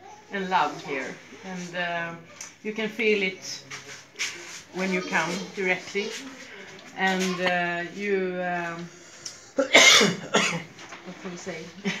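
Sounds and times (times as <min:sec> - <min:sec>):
woman coughing: 0:09.6 - 0:10.7.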